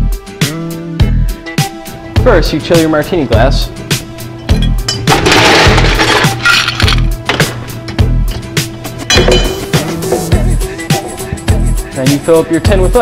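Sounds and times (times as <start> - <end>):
background music with steady beat: 0.0 - 13.0
ice cubes clinking in glass: 5.0 - 7.1.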